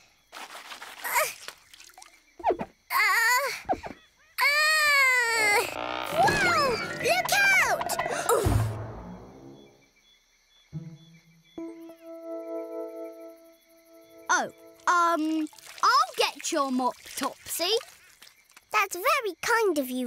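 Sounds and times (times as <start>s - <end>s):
wailing cartoon vocalising: 5.1s - 8.5s
quiet sustained music: 6.6s - 9.9s, 10.7s - 14.9s.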